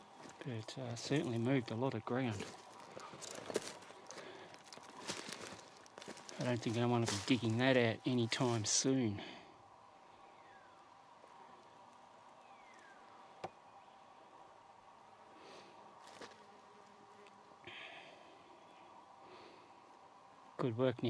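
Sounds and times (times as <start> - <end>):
insects buzzing: 0.0 - 21.0.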